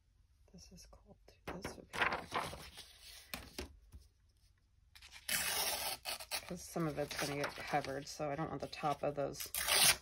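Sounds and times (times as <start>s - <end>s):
paper tearing: 5.0s - 7.9s, 9.4s - 10.0s.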